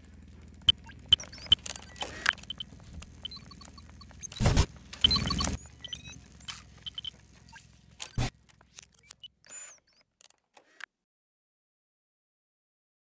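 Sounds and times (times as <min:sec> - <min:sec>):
faint clicks and chirps: 0:00.0 - 0:10.4
electronic blips: 0:00.6 - 0:10.9.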